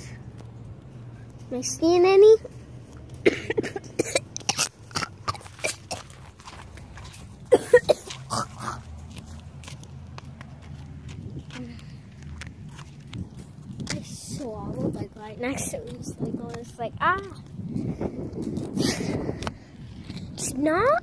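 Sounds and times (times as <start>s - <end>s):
person coughing: 3.2s - 6.0s, 7.5s - 8.5s.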